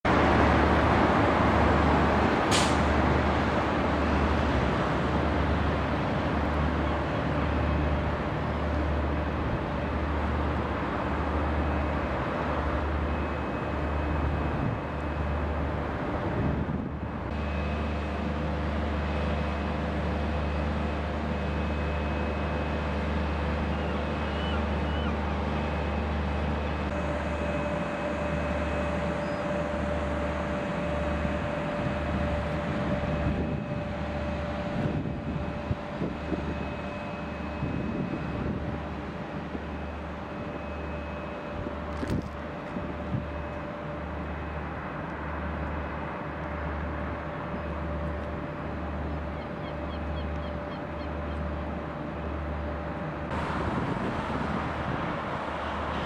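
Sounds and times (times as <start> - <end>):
constant noise: 0.0 - 56.0
pulsing machinery hum: 0.0 - 56.0
faint steady whines: 0.1 - 56.0.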